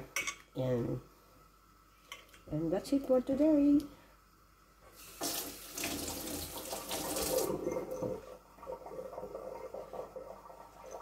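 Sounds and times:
tap water running into sink: 5.0s - 8.2s.

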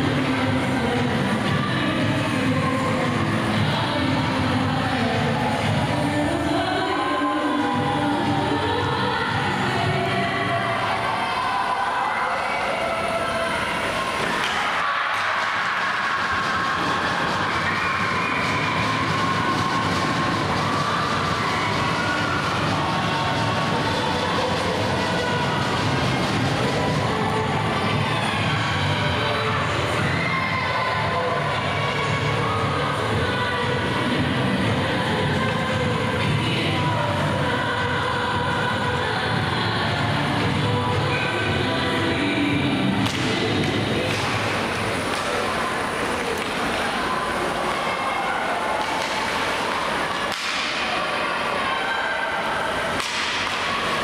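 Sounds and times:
voices of players and spectators: 0.0s - 54.0s
hockey sticks: 14.1s - 22.8s, 43.0s - 54.0s.

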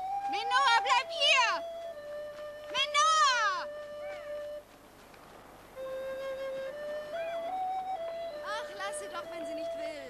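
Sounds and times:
flute music: 0.0s - 4.9s, 5.7s - 10.0s.

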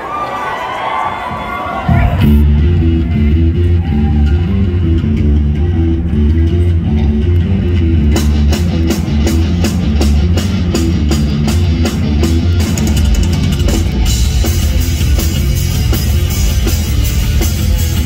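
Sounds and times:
bass and guitar riff: 1.9s - 18.0s
drums with cymbal strokes: 8.6s - 18.0s.

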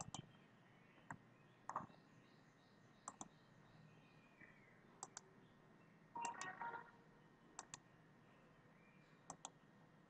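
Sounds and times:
mouse button clicks: 6.2s - 6.9s.

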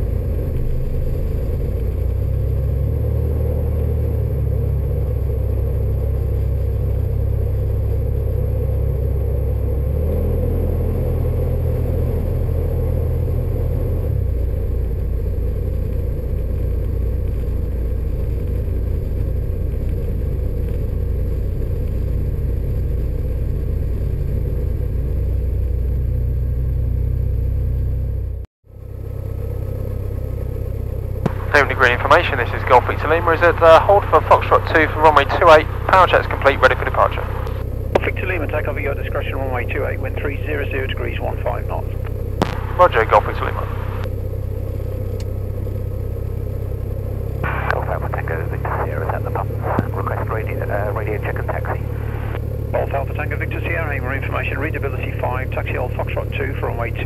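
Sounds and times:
aircraft engine drone: 0.0s - 57.0s.

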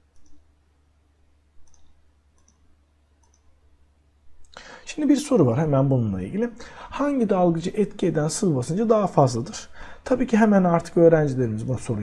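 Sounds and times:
low electrical hum: 0.0s - 12.0s
computer mouse clicks: 0.1s - 0.5s, 1.6s - 3.6s.

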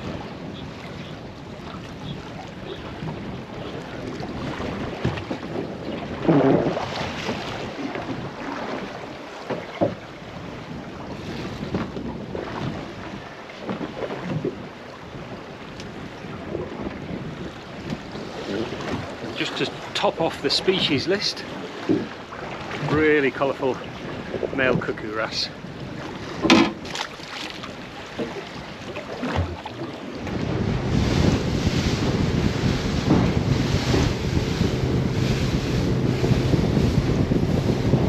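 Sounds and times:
water lapping at boat hull: 0.0s - 38.0s
wind buffeting microphone: 0.0s - 38.0s.

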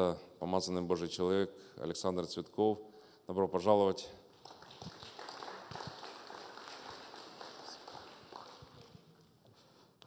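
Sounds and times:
congregation applauding: 4.3s - 9.4s.

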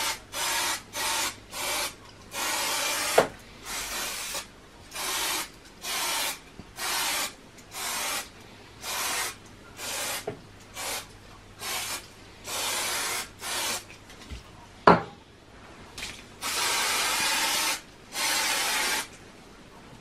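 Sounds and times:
aerosol can spraying: 0.0s - 13.9s, 16.4s - 19.1s.

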